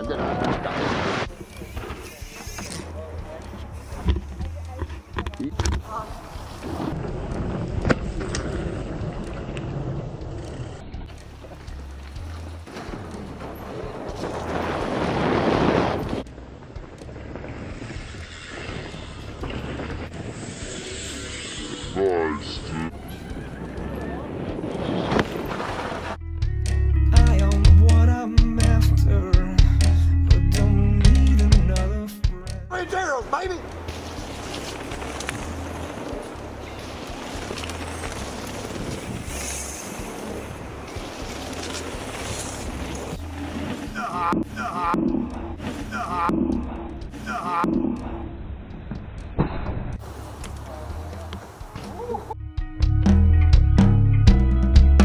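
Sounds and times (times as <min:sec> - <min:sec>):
wind buffeting microphone: 0:22.9 - 0:26.2.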